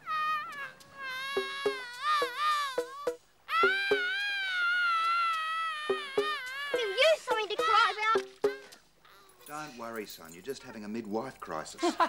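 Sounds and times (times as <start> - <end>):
baby wailing: 0.0 - 9.3.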